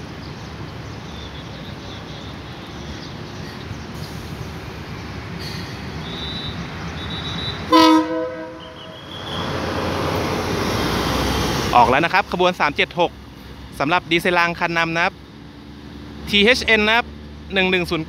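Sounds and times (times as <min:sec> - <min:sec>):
diesel engine rumble: 0:00.0 - 0:18.0
train horn toot: 0:07.7 - 0:09.1.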